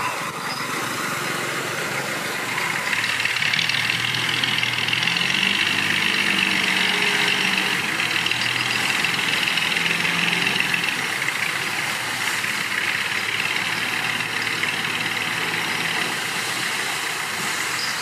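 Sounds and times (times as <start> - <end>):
diesel truck engine running: 0.0 - 18.0.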